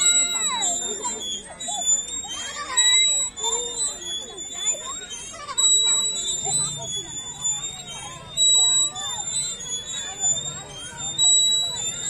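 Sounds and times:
metal swing hangers squeaking: 0.0 - 12.0
people chattering: 0.0 - 12.0.

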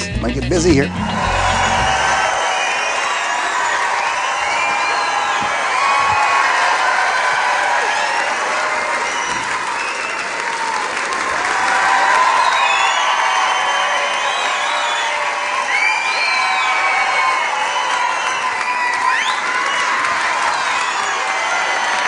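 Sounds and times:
audience applauding: 0.9 - 22.0
calls and whoops: 1.1 - 22.0.

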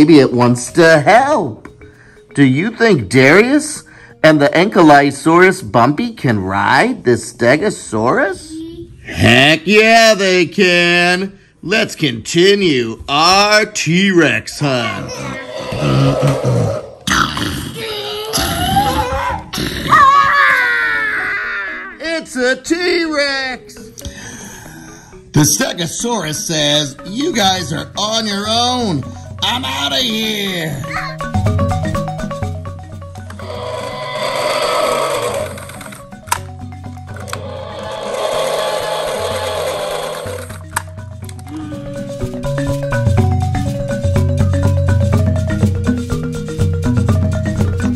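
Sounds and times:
dinosaur roar: 14.9 - 20.4, 33.3 - 36.0, 37.2 - 40.6
background music with bass line: 24.9 - 34.1, 40.4 - 47.9.

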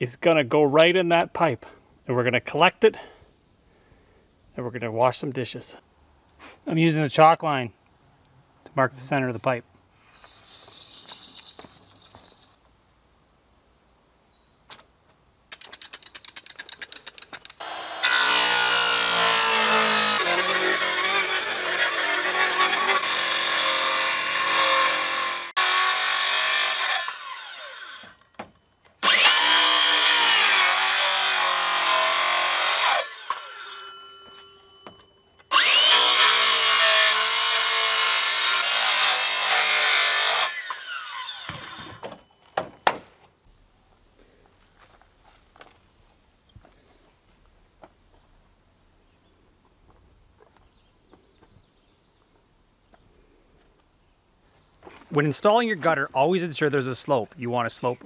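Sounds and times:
circular saw cutting plastic pipe: 15.6 - 28.2, 29.0 - 34.2, 35.5 - 42.0.

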